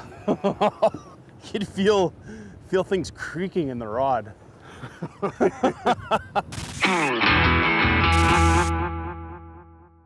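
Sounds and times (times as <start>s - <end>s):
distorted electric guitar chord: 7.0s - 9.9s.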